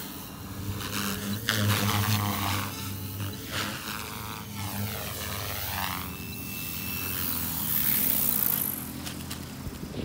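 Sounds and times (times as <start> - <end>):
rc helicopter rotor whirring: 0.0 - 10.0
thin motor whine: 0.0 - 10.0.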